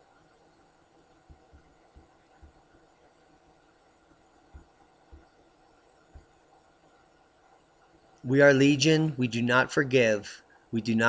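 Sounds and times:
soft low thumps: 0:04.5 - 0:05.3.

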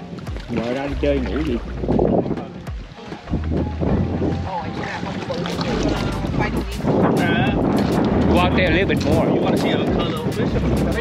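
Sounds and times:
water sloshing around legs: 0:00.0 - 0:11.0
wind buffeting microphone: 0:00.0 - 0:11.0.

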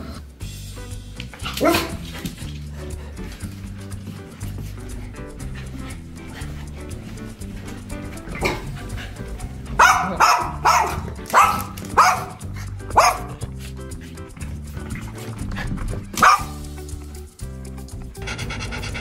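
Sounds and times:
background music: 0:00.0 - 0:19.0
small dog barking: 0:01.4 - 0:02.0, 0:08.4 - 0:08.7, 0:09.7 - 0:13.4, 0:16.2 - 0:16.6.

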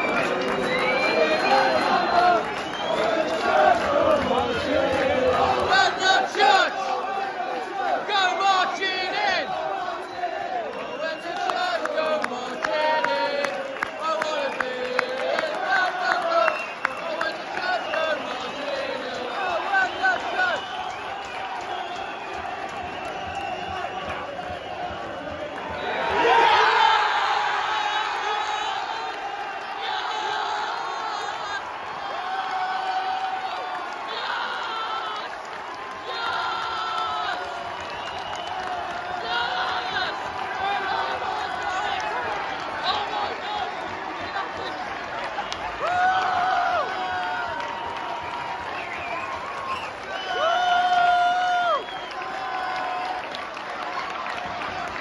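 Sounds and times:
crowd cheering: 0:00.0 - 0:55.0
crowd singing and shouting: 0:00.0 - 0:55.0.

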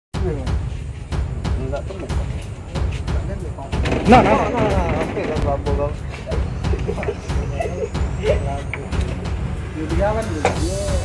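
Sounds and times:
metal roof sheets knocking: 0:01.5 - 0:07.8.

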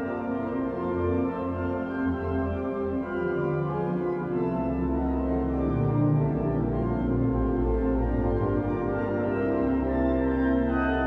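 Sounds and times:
pipe organ sustained chords: 0:00.0 - 0:11.0.

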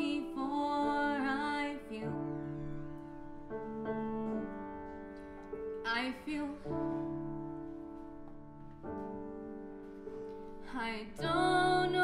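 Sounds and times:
woman singing with vibrato: 0:00.0 - 0:02.3, 0:10.7 - 0:12.0
piano chords: 0:00.0 - 0:12.0.

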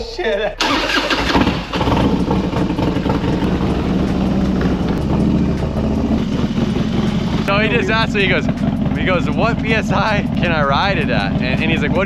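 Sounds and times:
motorcycle engine idling: 0:00.7 - 0:12.0.

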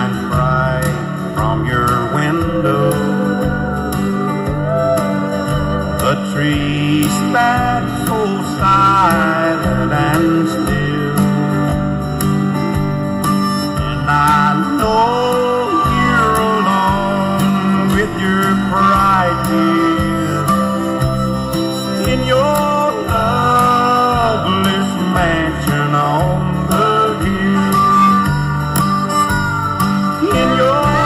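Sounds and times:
country music with steel guitar: 0:00.0 - 0:31.0.

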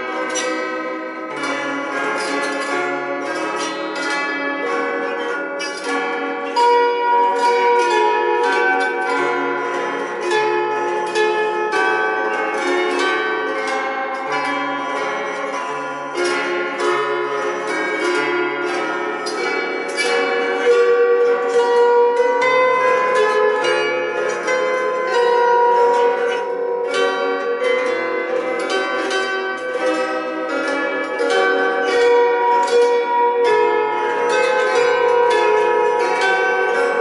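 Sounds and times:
plucked string melody: 0:00.0 - 0:37.0
strummed string chords: 0:00.0 - 0:37.0.

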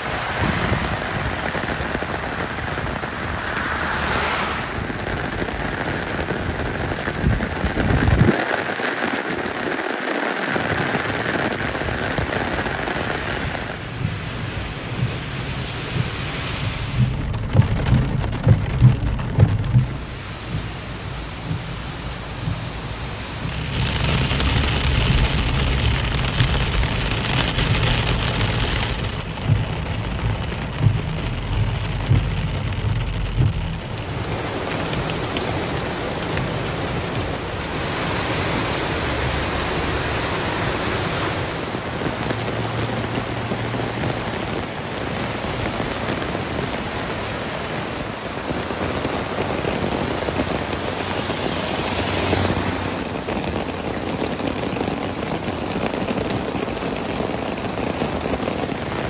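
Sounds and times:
heavy rain: 0:00.0 - 0:59.0
rain on car windscreen: 0:00.0 - 0:59.0
road rumble: 0:00.0 - 0:59.0
water rushing over rock: 0:00.0 - 0:59.0.

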